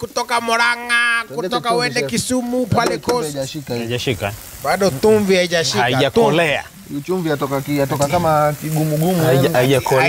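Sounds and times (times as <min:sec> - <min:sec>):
beans sizzling in a pan: 0:00.0 - 0:10.0
person talking: 0:04.8 - 0:10.0.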